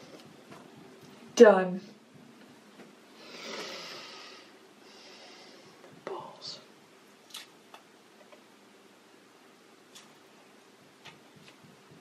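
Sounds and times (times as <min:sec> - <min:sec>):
breathy exhale: 0:03.2 - 0:05.8.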